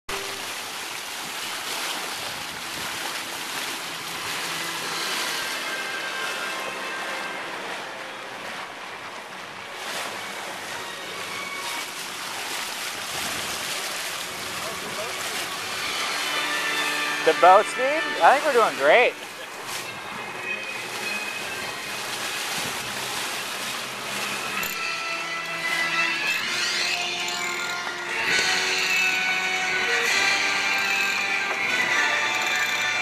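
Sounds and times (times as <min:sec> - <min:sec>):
water rushing along a hull: 0:00.1 - 0:33.0.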